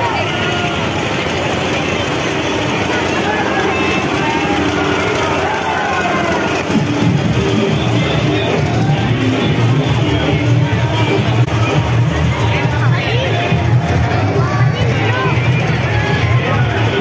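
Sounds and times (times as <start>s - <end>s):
crowd talking and calling out: 0.0s - 17.0s
music with heavy bass beat: 6.5s - 17.0s.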